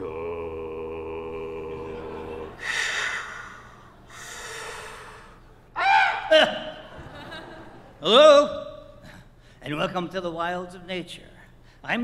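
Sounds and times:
breathy exhalations: 2.6 - 5.6
short high cry: 5.8 - 6.7.

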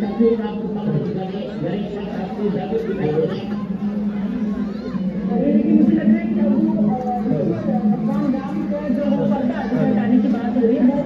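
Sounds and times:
men chatting: 5.3 - 11.0.

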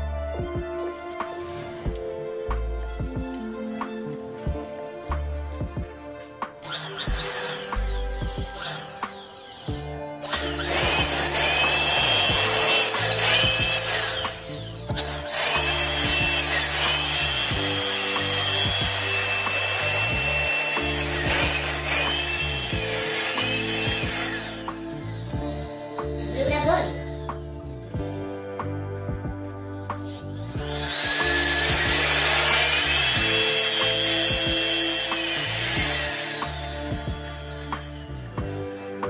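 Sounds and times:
background music: 0.0 - 39.0
electric blower running: 5.8 - 28.4, 30.1 - 39.0.

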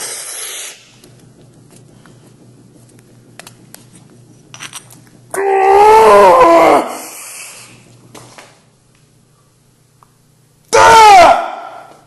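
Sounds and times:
man yelling with effort: 5.4 - 7.0, 10.7 - 11.9.

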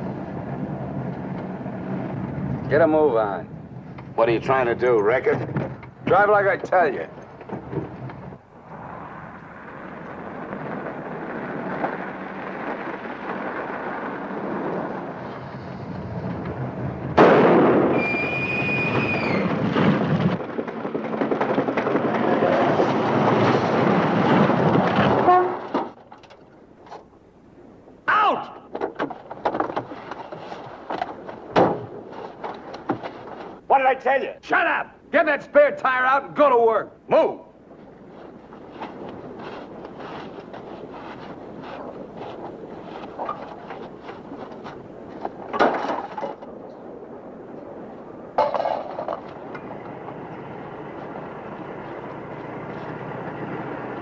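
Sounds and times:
car driving on rough road: 0.0 - 4.2, 5.0 - 27.0, 37.5 - 54.0
knocks and clatter: 5.1 - 8.4, 19.0 - 27.1, 28.7 - 33.6, 37.7 - 46.9, 48.4 - 50.7
tyre blowout bang: 17.0 - 26.0
tyre squeal: 17.9 - 19.5.

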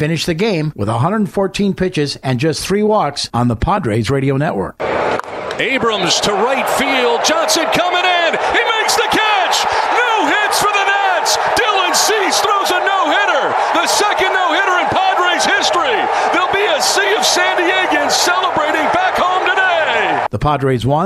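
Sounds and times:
crowd cheering: 4.8 - 20.3
announcer calling excitedly: 5.6 - 20.3.

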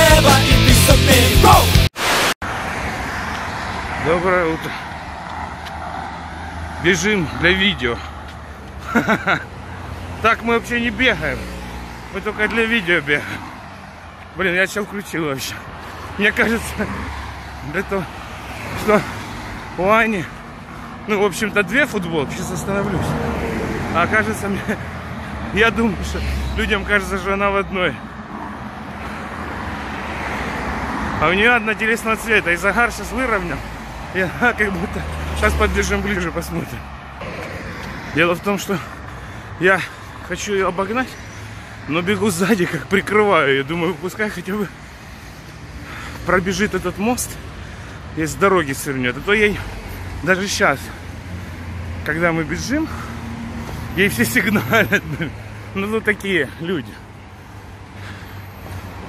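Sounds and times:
road traffic: 0.0 - 59.0
person talking: 53.9 - 57.1.

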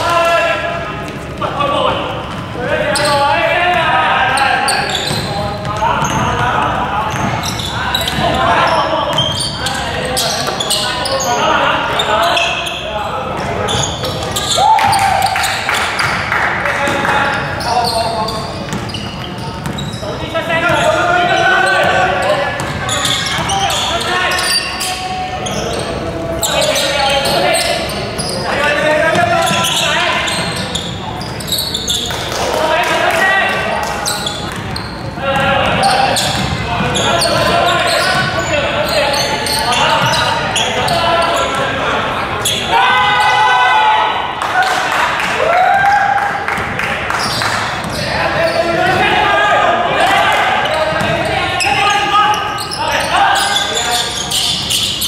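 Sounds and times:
players shouting in echoing hall: 0.0 - 55.0
basketball bouncing on wooden court: 4.9 - 9.5, 18.5 - 20.0, 20.7 - 24.0, 34.1 - 40.2, 50.9 - 51.7.

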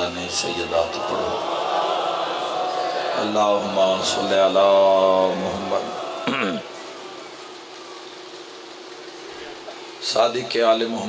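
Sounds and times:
sound system buzzing hum: 0.0 - 11.0
amplified man chanting: 3.2 - 6.6.

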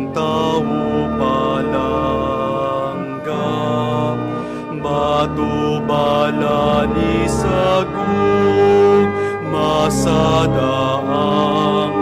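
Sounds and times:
instrumental accompaniment: 0.0 - 12.0
slow hymn singing: 0.0 - 12.0.

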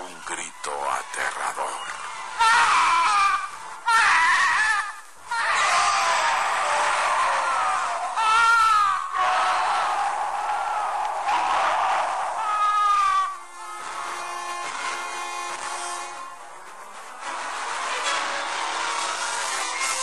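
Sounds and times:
horror scream: 4.0 - 13.7.

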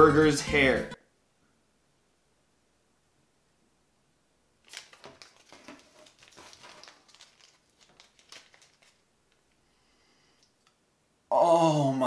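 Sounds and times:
plastic bag and paper crinkling: 4.6 - 9.6.

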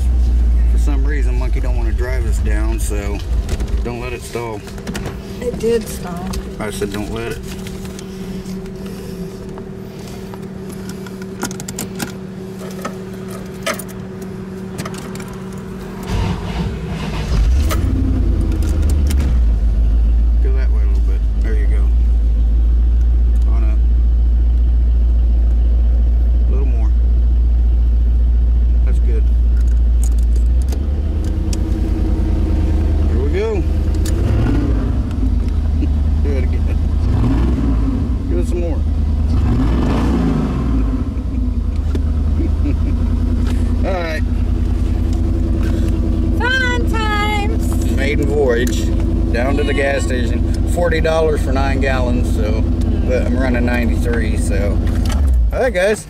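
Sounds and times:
car engine starting: 0.0 - 56.0
low exhaust rumble: 0.0 - 56.0.

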